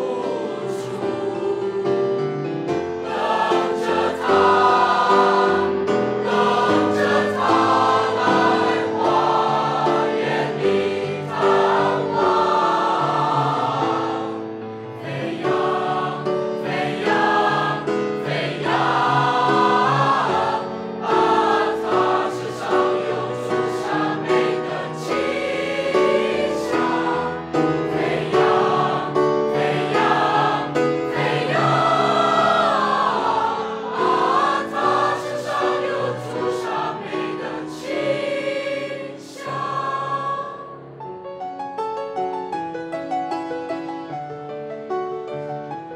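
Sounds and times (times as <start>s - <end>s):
mixed children's choir singing: 0.0s - 2.2s, 3.0s - 40.8s.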